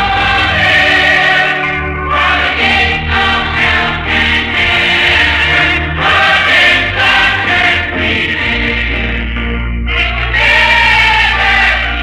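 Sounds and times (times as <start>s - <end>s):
choir singing gospel song: 0.0s - 12.0s.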